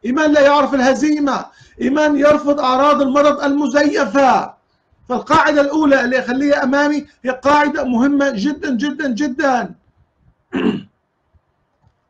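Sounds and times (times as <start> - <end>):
man clearing his throat: 10.5 - 10.9.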